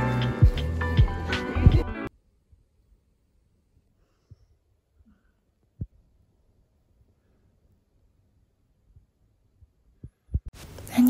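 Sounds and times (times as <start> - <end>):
faint room hiss: 2.1 - 11.0.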